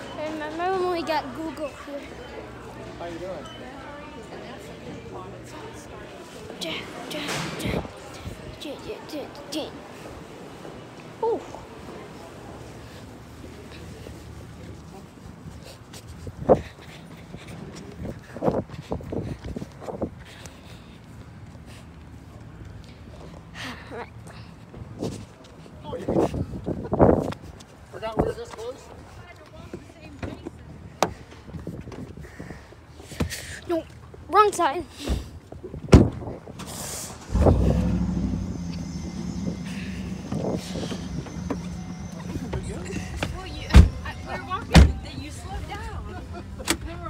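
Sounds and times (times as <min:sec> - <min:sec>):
car engine starting and idling: 0:36.9 - 0:45.9.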